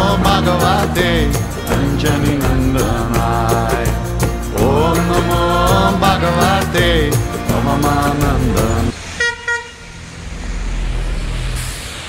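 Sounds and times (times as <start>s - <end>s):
road traffic rumble: 0.0s - 12.0s
vehicle horn beeps: 9.2s - 10.0s.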